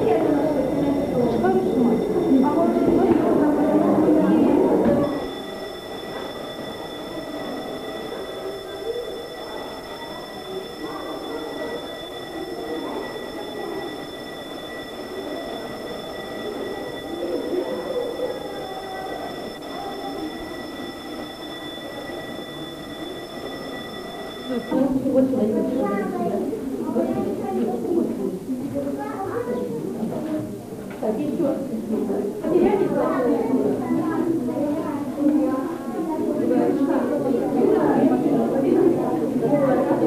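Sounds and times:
high-pitched multi-tone whine: 0:00.0 - 0:27.1
background voices chattering: 0:00.0 - 0:40.0.

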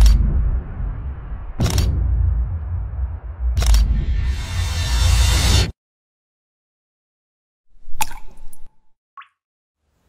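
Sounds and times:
water drops plopping into water: 0:07.9 - 0:09.4.

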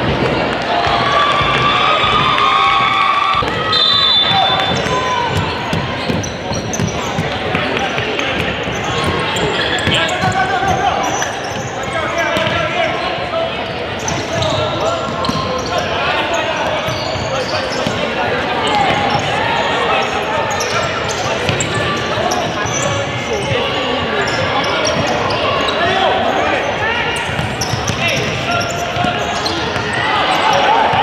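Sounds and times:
shouting and chatter in a gymnasium: 0:00.0 - 0:31.0.

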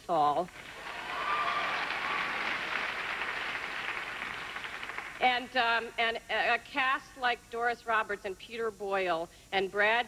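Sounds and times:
audience applauding: 0:00.5 - 0:05.2.

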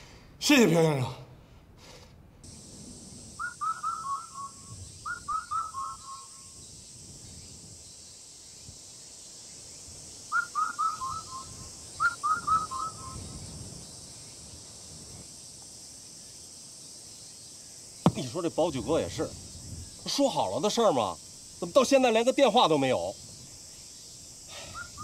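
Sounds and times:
high insect drone: 0:01.8 - 0:25.0
bird whistling falling notes: 0:03.4 - 0:06.3, 0:10.3 - 0:13.2.

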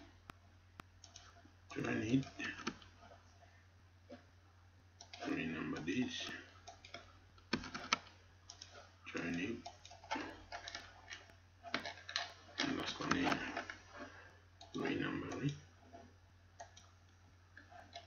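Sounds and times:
steady low hum: 0:00.0 - 0:18.0
computer mouse clicking: 0:00.2 - 0:03.2, 0:05.0 - 0:18.0
indistinct speech: 0:01.7 - 0:02.7, 0:05.2 - 0:06.5, 0:12.6 - 0:13.7, 0:14.7 - 0:15.7.

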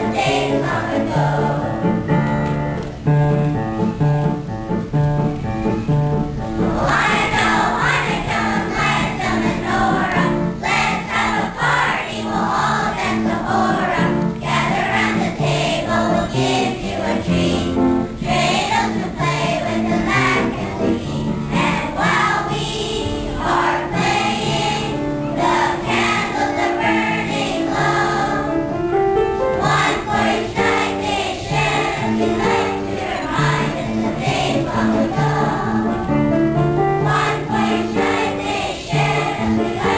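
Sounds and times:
children's choir singing: 0:00.0 - 0:02.8, 0:05.6 - 0:39.9
instrumental accompaniment: 0:00.0 - 0:39.9.

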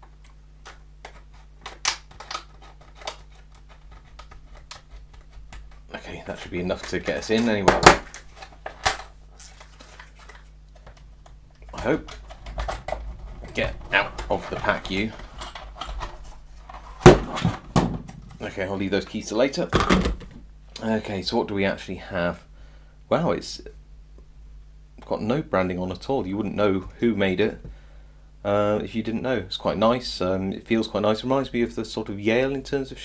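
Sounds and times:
plastic packaging cracking: 0:01.0 - 0:11.0.

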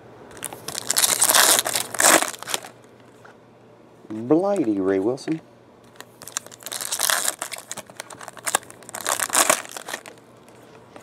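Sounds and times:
foil wrapper tearing and crinkling: 0:00.4 - 0:02.7, 0:06.0 - 0:10.2.

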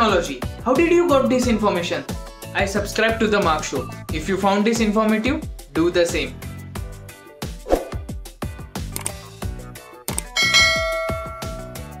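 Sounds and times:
music with thumping beat: 0:04.8 - 0:12.0
bell ding: 0:10.4 - 0:12.0.

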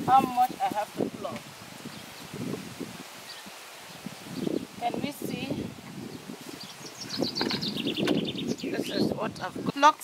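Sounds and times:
leaves and twigs rustling: 0:00.0 - 0:10.0.

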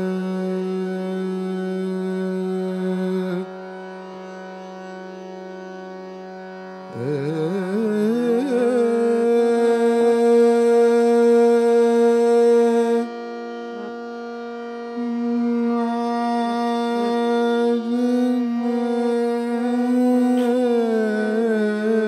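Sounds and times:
man singing: 0:00.0 - 0:03.6, 0:06.9 - 0:14.0, 0:15.0 - 0:22.0
harmonium: 0:00.0 - 0:22.0.

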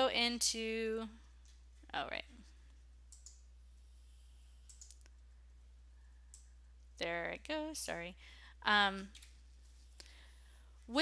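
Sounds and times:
faint computer mouse clicks: 0:04.6 - 0:05.2.

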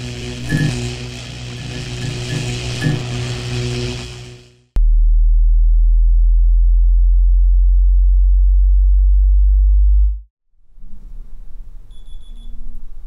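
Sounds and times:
pulsing electric buzzing hum: 0:00.0 - 0:05.0
deep synthetic tone: 0:00.0 - 0:10.3.

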